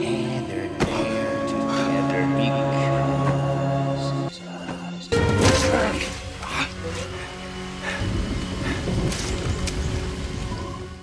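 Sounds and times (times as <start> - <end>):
steady rain: 5.9 - 11.0.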